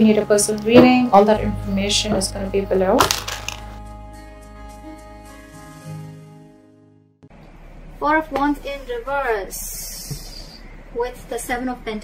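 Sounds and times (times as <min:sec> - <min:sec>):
soft background music: 0:00.0 - 0:07.2.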